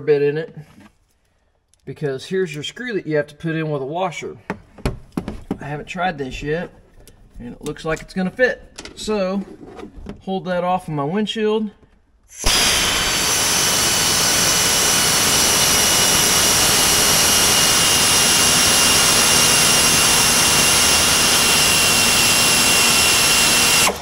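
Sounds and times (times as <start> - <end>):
air ratchet hissing and whining: 12.4 - 24.0.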